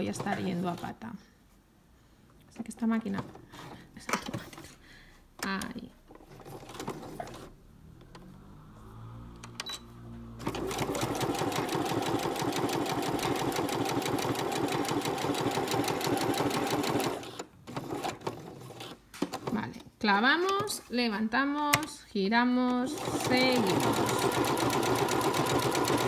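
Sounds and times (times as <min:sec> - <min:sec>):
sewing machine stitching: 0:06.1 - 0:07.6, 0:10.4 - 0:19.7, 0:22.9 - 0:26.0.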